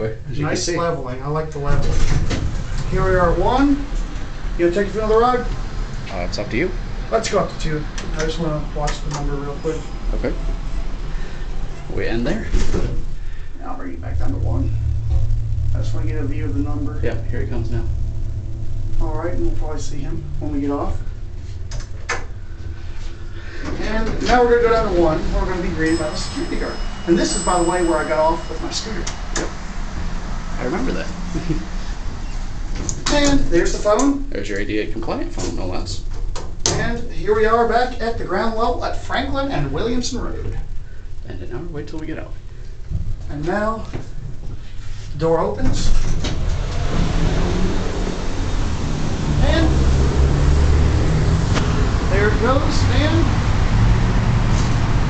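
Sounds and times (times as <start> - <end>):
low steady rumble: 0.0 - 55.0
elevator doors sliding open: 21.6 - 34.1, 45.9 - 55.0.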